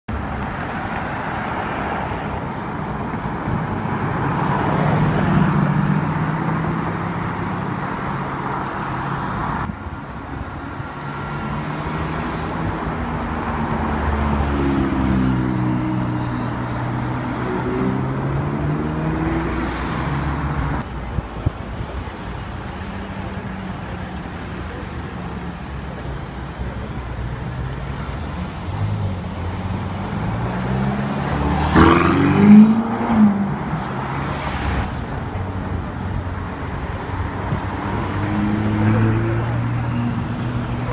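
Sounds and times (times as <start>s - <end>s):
sports cars passing: 0.1s - 20.9s, 22.6s - 40.9s
engine revving: 29.6s - 33.6s.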